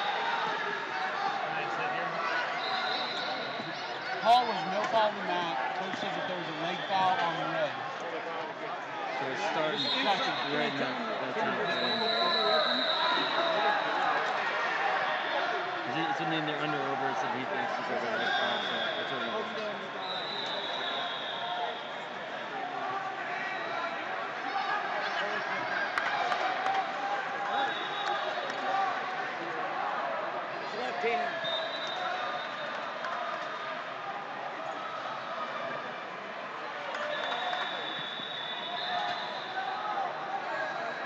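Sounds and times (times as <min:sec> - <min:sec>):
chatter of many voices: 0:00.0 - 0:41.0.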